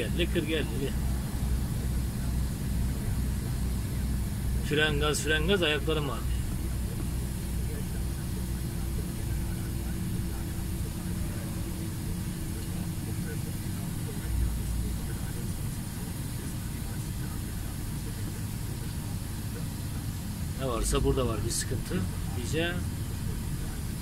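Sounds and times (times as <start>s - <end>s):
diesel engine running: 0.0s - 24.0s
faint steady whine: 0.0s - 24.0s
road rumble: 0.0s - 24.0s.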